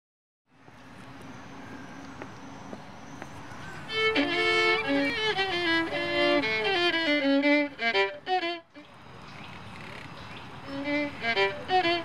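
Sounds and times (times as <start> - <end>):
distant road traffic: 0.5 - 12.0
violin playing: 3.9 - 8.9, 10.7 - 12.0.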